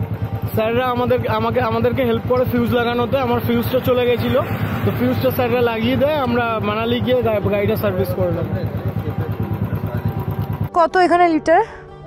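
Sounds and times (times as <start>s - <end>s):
motorcycle engine idling: 0.0s - 10.9s.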